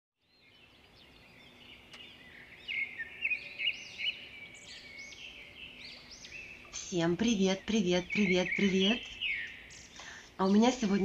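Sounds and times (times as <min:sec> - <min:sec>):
birds chirping: 0:00.2 - 0:11.0.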